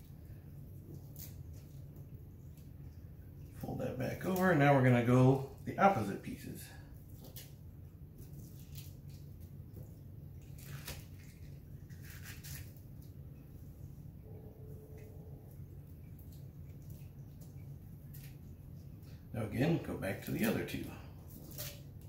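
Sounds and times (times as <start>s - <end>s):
wet bacon handling squishes: 0.0s - 13.4s, 15.0s - 19.3s, 20.0s - 22.0s
steady low hum: 0.0s - 22.0s
plastic wrap rustles: 10.4s - 13.2s, 19.6s - 22.0s.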